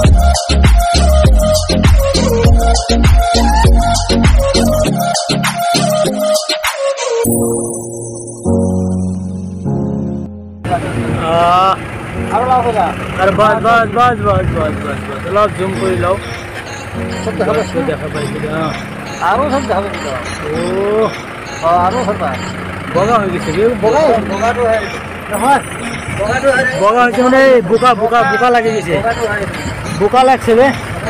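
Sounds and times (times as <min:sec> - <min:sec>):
vehicle engine idling: 0:10.6 - 0:31.0
people talking: 0:10.7 - 0:16.3, 0:17.0 - 0:31.0
drawn-out raised voice calls: 0:10.7 - 0:31.0.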